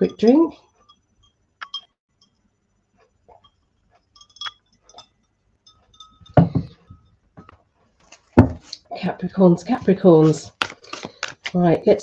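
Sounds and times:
drinking glass clinking: 0.0s - 2.4s, 3.3s - 7.5s.

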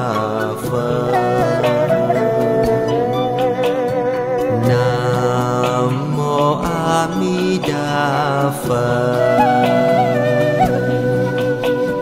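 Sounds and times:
slow devotional chant: 0.0s - 3.0s, 4.5s - 11.4s
sustained accompaniment: 0.2s - 7.4s.

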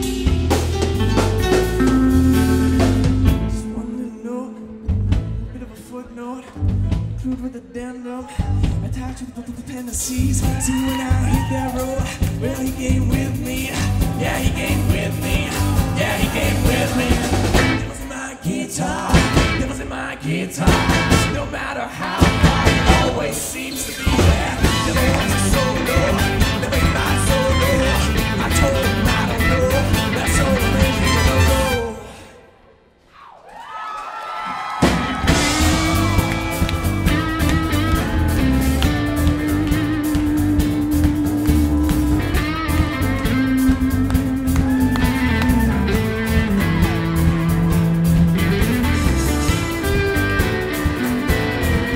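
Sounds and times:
drum kit: 0.0s - 3.9s, 9.9s - 18.2s, 18.9s - 31.8s, 34.7s - 51.9s
live rock band: 0.0s - 4.1s, 10.0s - 20.0s, 20.6s - 31.9s, 34.7s - 51.9s
bending melodic line: 0.0s - 5.5s
electric guitar: 0.0s - 5.8s, 20.6s - 31.9s, 34.8s - 51.9s
bass line: 0.0s - 5.9s, 6.5s - 7.6s, 8.4s - 9.2s, 10.1s - 18.2s, 19.0s - 19.9s, 20.6s - 32.0s, 34.8s - 51.9s.

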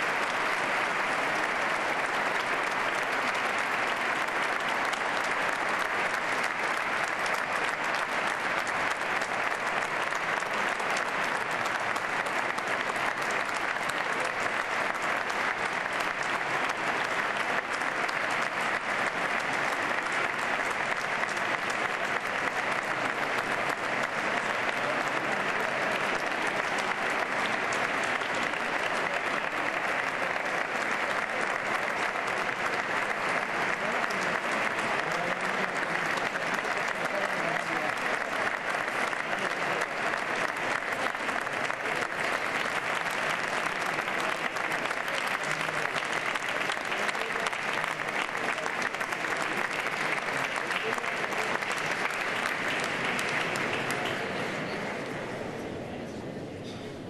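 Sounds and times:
audience applauding: 0.0s - 55.9s.

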